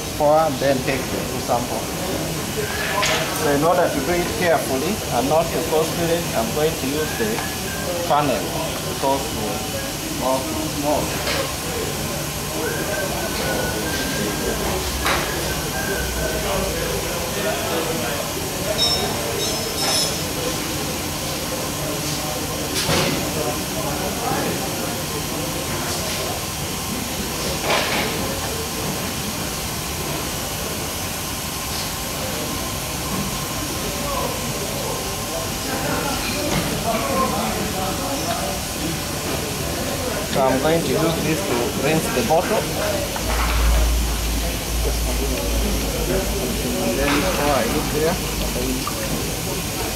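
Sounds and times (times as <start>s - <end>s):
process equipment hiss and hum: 0.0s - 49.9s
faint voices: 20.2s - 49.9s.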